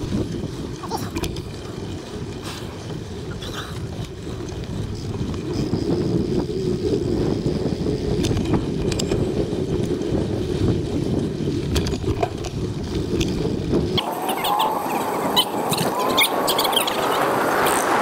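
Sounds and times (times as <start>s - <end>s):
bike clicks and rattles: 0.0s - 18.0s
wind buffeting microphone: 0.0s - 18.0s.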